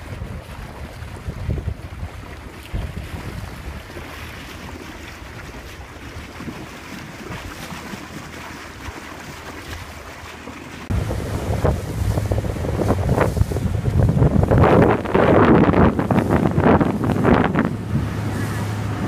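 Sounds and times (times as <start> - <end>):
wind buffeting microphone: 0.0 - 7.7, 10.9 - 19.0
water rushing past boat hull: 0.0 - 19.0.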